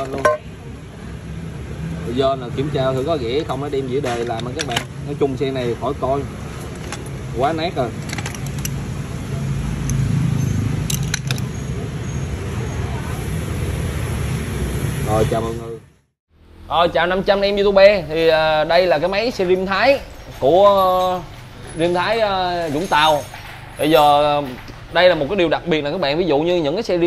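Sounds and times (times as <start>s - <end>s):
low rumble of street traffic: 0.0s - 27.0s.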